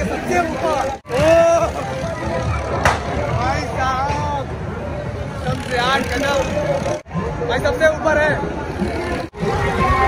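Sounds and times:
ride rumble: 0.0s - 10.0s.

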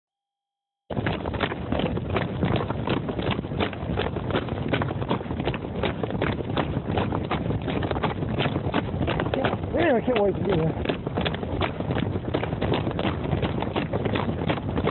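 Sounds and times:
sharp knocks patter: 0.9s - 14.9s.

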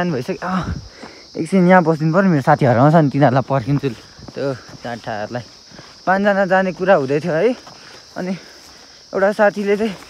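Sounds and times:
insects chirring: 0.0s - 10.0s
man speaking: 1.4s - 8.5s, 9.1s - 10.0s.

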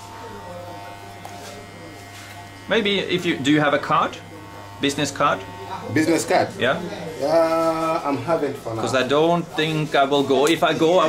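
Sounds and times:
hair clippers buzzing: 0.0s - 11.0s.

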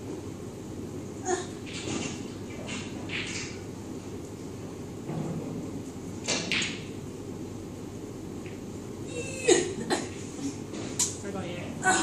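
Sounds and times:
room hum: 0.0s - 12.0s.

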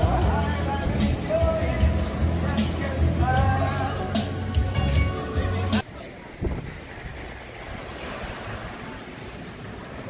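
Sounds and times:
small waves washing onto sand: 5.8s - 10.0s
wind on microphone: 6.0s - 9.0s.

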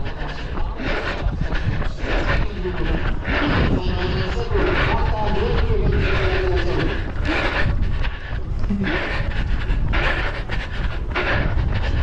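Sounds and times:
hard rhythmic breathing: 0.0s - 12.0s
wind rumbling on microphone: 0.0s - 12.0s
distant announcer over loudspeakers: 2.1s - 7.1s.

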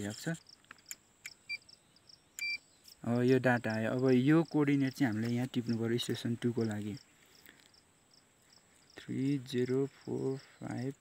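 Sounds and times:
insects chirping: 0.0s - 11.0s
electronic beeps: 2.4s - 2.6s.

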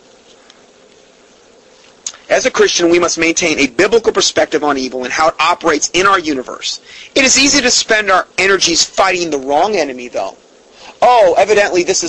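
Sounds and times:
faint hiss: 0.0s - 12.0s
faint hum: 0.0s - 12.0s.

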